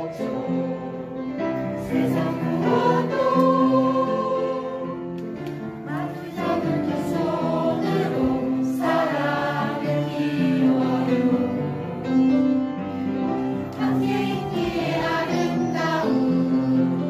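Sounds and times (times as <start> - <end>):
choir singing: 0.0 - 12.4, 13.2 - 17.0.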